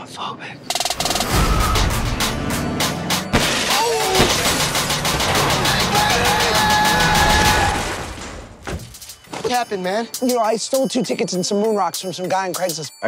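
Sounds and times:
trailer music with fast beat: 0:00.7 - 0:07.5.

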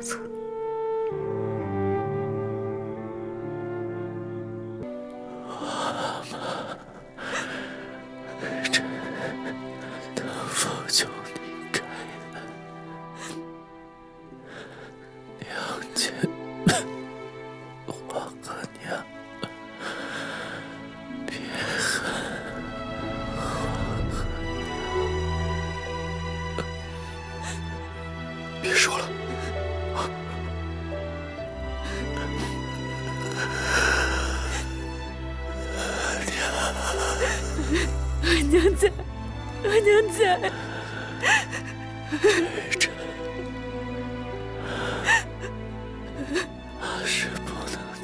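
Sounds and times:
soft background music: 0:00.0 - 0:48.0
gasping breath: 0:05.4 - 0:10.6, 0:19.8 - 0:28.0, 0:31.6 - 0:39.2, 0:40.5 - 0:43.5, 0:44.3 - 0:48.0
woman speaking: 0:38.2 - 0:39.0, 0:39.6 - 0:40.6.

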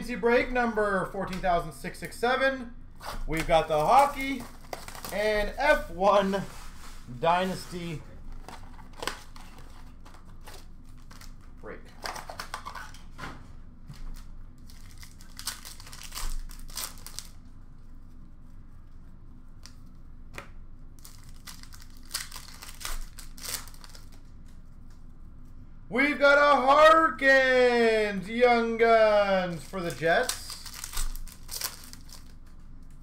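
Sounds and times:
foil wrappers crinkling and ripping: 0:03.3 - 0:13.1, 0:13.9 - 0:17.5, 0:21.0 - 0:24.7, 0:29.4 - 0:33.0.

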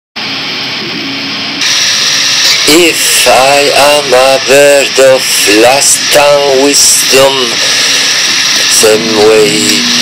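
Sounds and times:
steady hiss: 0:01.6 - 0:10.0.

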